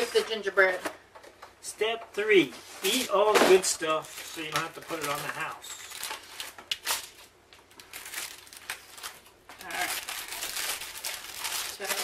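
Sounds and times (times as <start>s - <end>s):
plastic wrappers crinkling: 2.8s - 12.0s.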